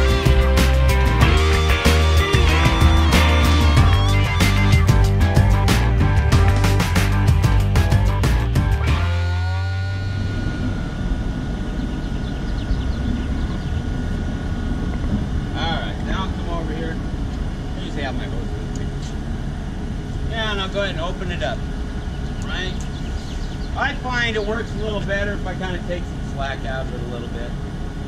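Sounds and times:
diesel truck engine rumbling: 0.0 - 28.0.

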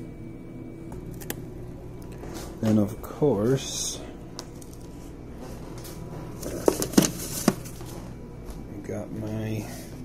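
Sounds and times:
handling noise: 4.5 - 8.6.

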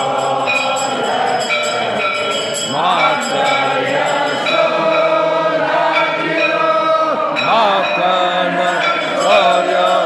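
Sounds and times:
group singing a hymn: 0.0 - 10.0.

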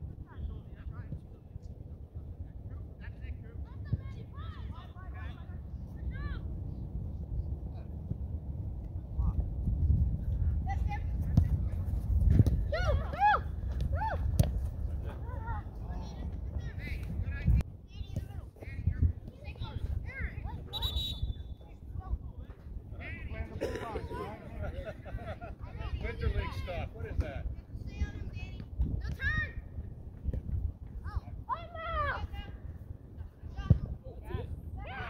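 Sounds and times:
wind rumble on microphone: 5.4 - 23.3, 24.7 - 35.0
ball being kicked: 11.2 - 14.7
referee's whistle: 20.7 - 21.6.

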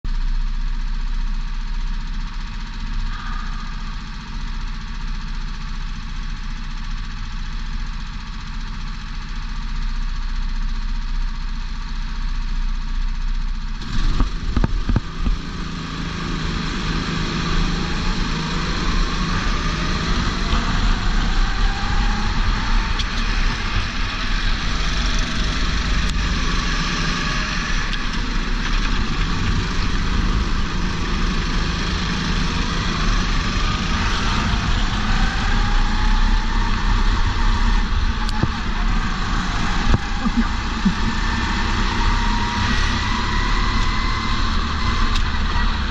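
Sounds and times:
go-kart engines: 0.1 - 45.9.

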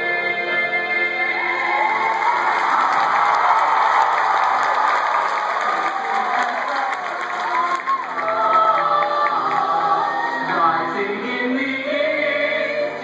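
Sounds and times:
music and singing: 0.0 - 2.4, 6.8 - 13.0
audience applauding and cheering: 1.2 - 10.7
whoops: 1.4 - 8.6.

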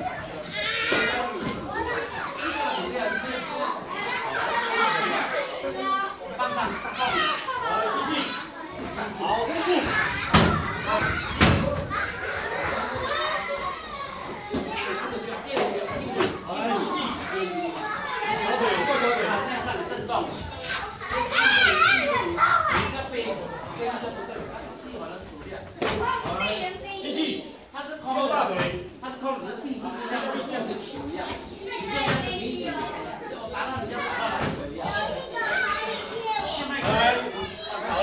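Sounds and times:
babble of overlapping voices: 0.0 - 38.0
children and adults chattering: 0.0 - 38.0.

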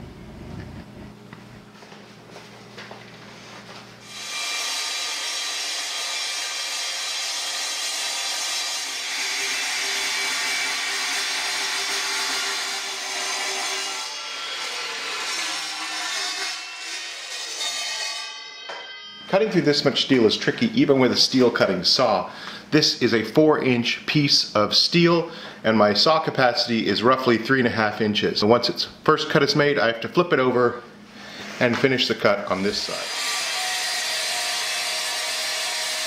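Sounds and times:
saw blade ringing through steel: 15.4 - 19.8.

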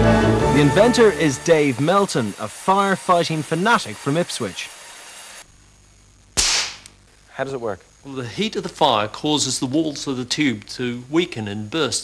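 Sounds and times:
plastic tube bursting pop: 6.4 - 7.0.

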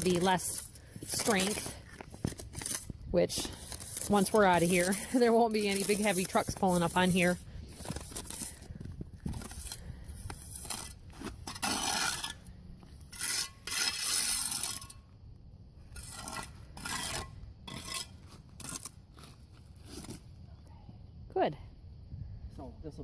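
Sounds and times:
boot scraping gritty concrete: 0.0 - 15.0, 15.9 - 20.4.

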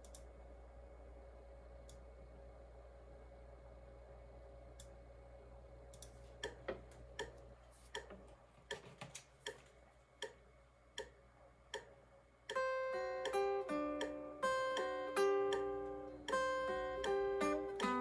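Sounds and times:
light clicks: 5.9 - 6.6
electric guitar lead melody: 12.6 - 18.0.

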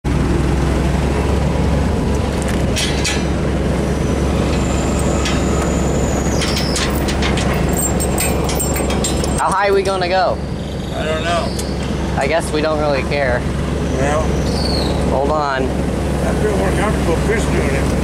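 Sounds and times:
forklift engine idling: 0.0 - 18.0
metal chain clinking: 6.4 - 9.5.

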